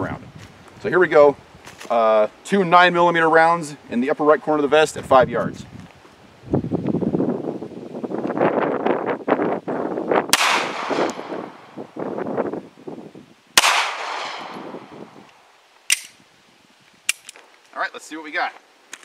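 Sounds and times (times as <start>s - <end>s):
handgun shots with echo: 10.4s - 11.4s, 13.6s - 14.7s, 15.9s - 16.1s.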